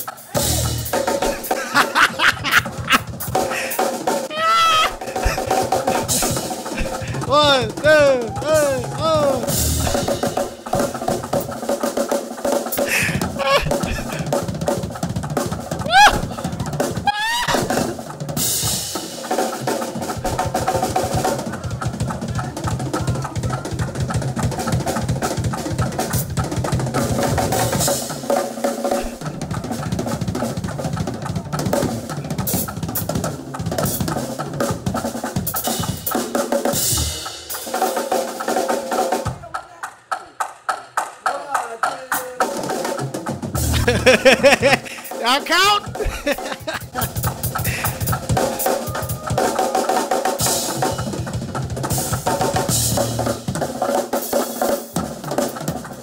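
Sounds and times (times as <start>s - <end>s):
drum kits playing fast fills: 0.0s - 56.0s.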